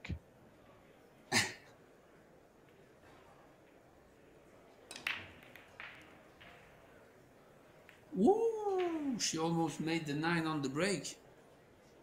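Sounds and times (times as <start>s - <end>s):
person coughing: 1.3s - 1.6s.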